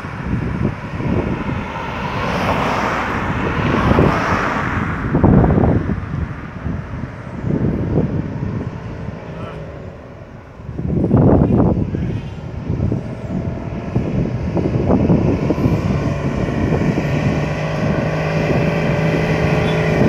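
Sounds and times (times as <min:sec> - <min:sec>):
car passing by: 0:00.0 - 0:20.0
wind buffeting microphone: 0:00.0 - 0:20.0.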